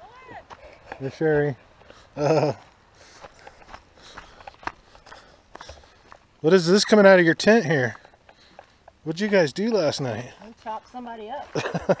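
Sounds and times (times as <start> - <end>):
footsteps on asphalt: 0.0 - 9.3, 9.9 - 12.0.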